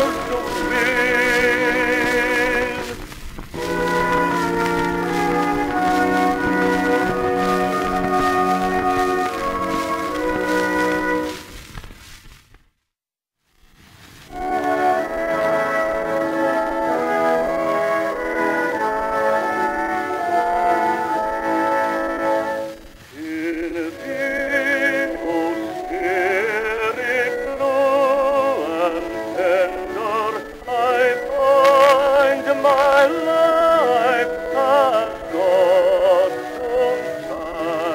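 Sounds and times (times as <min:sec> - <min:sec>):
baritone singing with vibrato: 0:00.0 - 0:11.4, 0:14.3 - 0:37.9
orchestra playing sustained chords: 0:03.6 - 0:11.4, 0:14.4 - 0:22.7.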